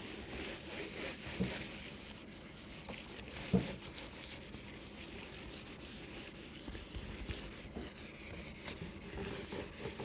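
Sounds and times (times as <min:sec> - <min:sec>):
eraser rubbing on whiteboard: 0:00.0 - 0:10.0.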